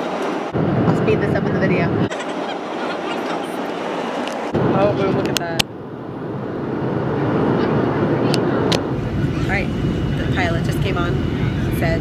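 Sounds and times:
jet engines and cabin airflow roar: 0:00.0 - 0:12.0.

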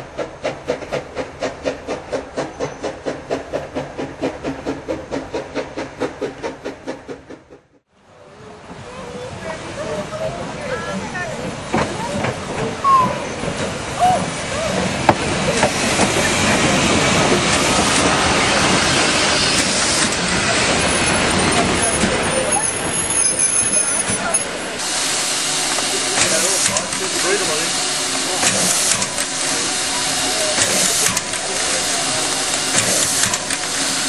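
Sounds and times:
steam hissing: 0:00.0 - 0:07.5, 0:08.9 - 0:34.0
carriages rumbling past: 0:08.0 - 0:34.0
people talking: 0:08.2 - 0:14.9, 0:20.3 - 0:24.7, 0:25.7 - 0:33.1.

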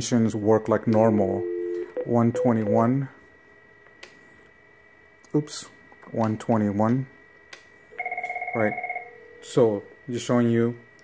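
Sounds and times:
faint high-pitched tone: 0:01.2 - 0:03.1.

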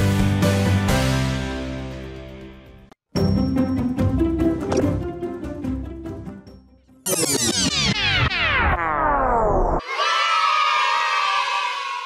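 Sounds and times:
children cheering: 0:09.8 - 0:12.0.

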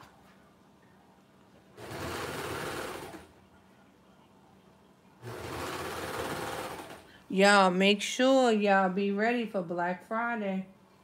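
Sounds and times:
overlock sewing machine running: 0:01.8 - 0:03.3, 0:05.2 - 0:07.1.

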